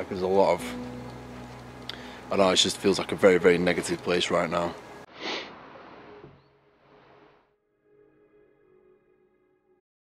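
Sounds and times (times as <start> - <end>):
nose sniff: 5.1 - 5.6.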